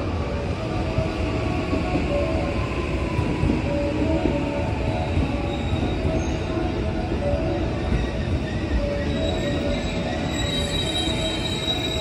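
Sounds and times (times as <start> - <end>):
train wheels rumbling on rails: 0.0 - 12.0.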